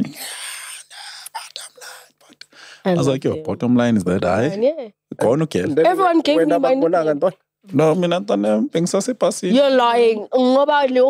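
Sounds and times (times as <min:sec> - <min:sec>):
man talking: 0:02.6 - 0:09.7.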